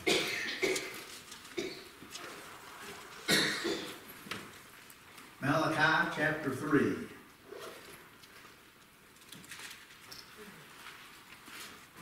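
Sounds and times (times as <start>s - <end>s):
man clearing his throat: 0.0s - 1.0s, 3.3s - 4.0s
man coughing: 0.0s - 1.0s, 3.3s - 4.0s.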